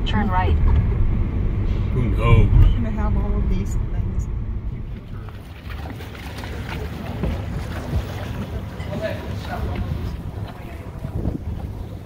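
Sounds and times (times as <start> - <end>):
boat engine rumble: 0.0 - 12.0
wind on microphone: 9.6 - 12.0.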